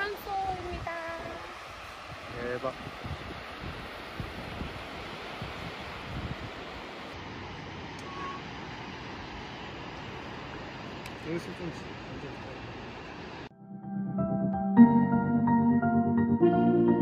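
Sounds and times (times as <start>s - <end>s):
wind buffeting microphone: 0.0s - 7.1s.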